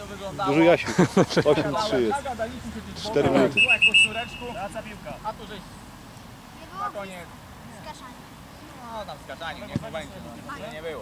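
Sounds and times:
voices calling: 0.0s - 11.0s
referee's whistle blast: 3.6s - 4.8s.

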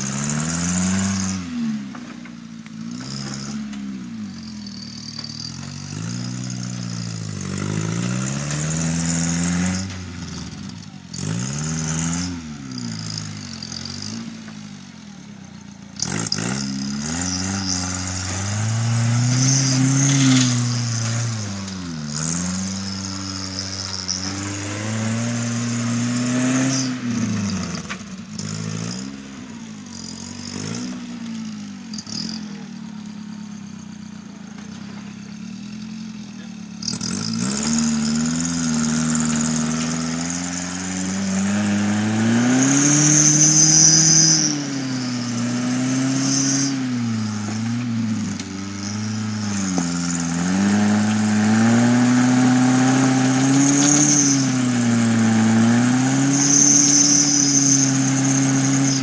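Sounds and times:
engine revving up and down: 0.0s - 59.0s.

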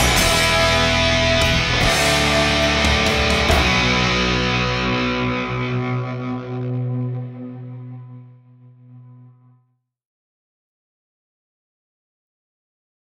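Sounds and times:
overdriven electric guitar chord: 0.0s - 9.7s.

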